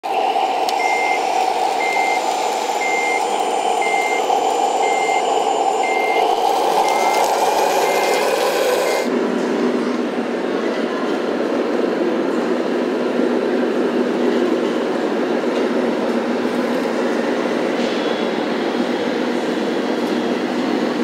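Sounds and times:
reversing alarm beeping: 0:00.0 - 0:09.1
mechanical running drone: 0:00.0 - 0:10.4.

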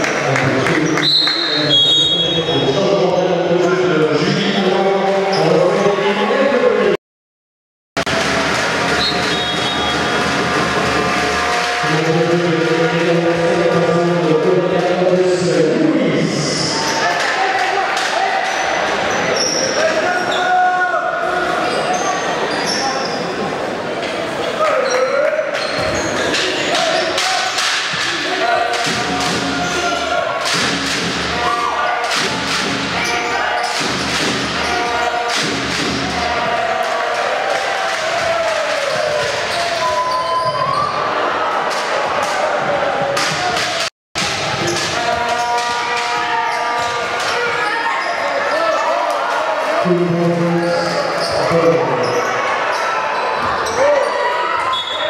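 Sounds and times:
voices echoing in a hall: 0:00.0 - 0:07.0, 0:08.3 - 0:55.0.

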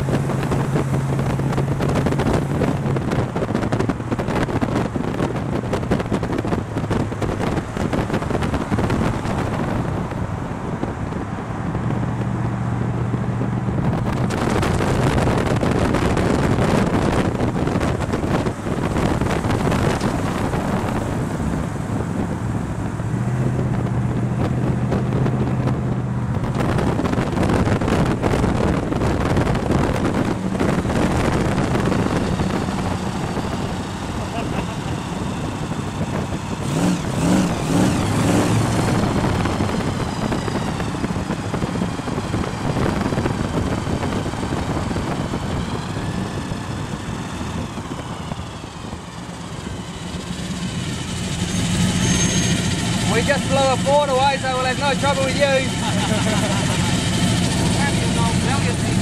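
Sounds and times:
car engines passing slowly: 0:00.0 - 0:59.0
road and wind noise: 0:00.0 - 0:59.0.

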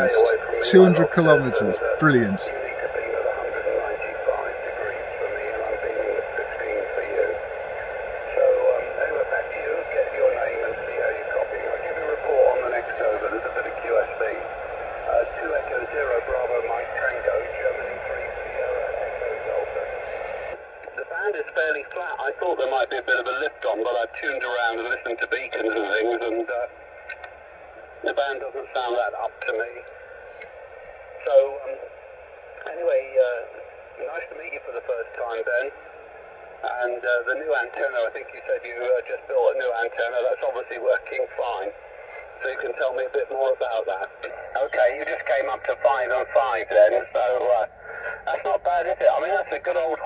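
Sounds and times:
man speaking over radio: 0:00.0 - 0:07.5, 0:08.2 - 0:20.0, 0:20.9 - 0:27.2, 0:28.0 - 0:29.9, 0:31.2 - 0:31.9, 0:32.6 - 0:35.8, 0:36.6 - 0:50.0
radio hiss: 0:00.0 - 0:50.0.

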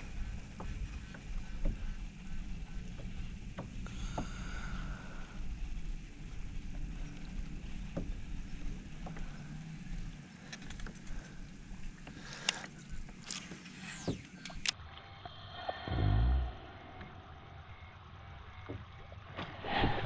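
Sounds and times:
wind: 0:00.0 - 0:20.0.

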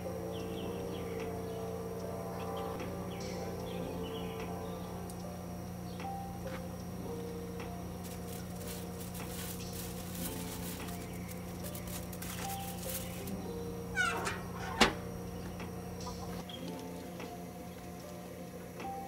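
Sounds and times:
background music: 0:00.0 - 0:19.0
steady hum: 0:00.0 - 0:19.0
metal lid clanking shut: 0:14.0 - 0:15.0.

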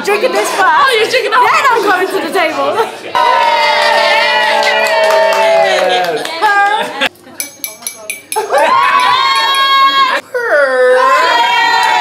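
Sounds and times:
people cheering with whoops: 0:03.2 - 0:06.2, 0:08.5 - 0:12.0
people clapping: 0:03.2 - 0:06.7, 0:11.5 - 0:12.0.

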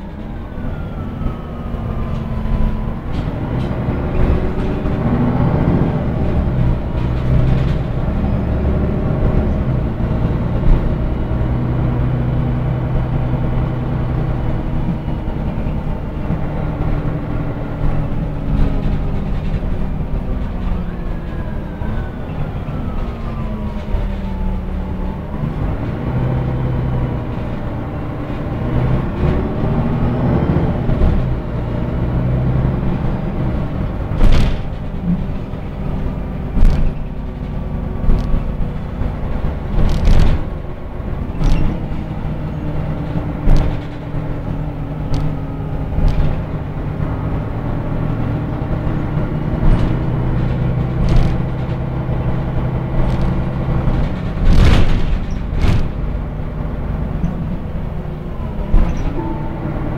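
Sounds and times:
bus engine rumbling: 0:00.0 - 0:59.9
bus body knocks and rattles: 0:02.1 - 0:21.6, 0:25.4 - 0:59.2.

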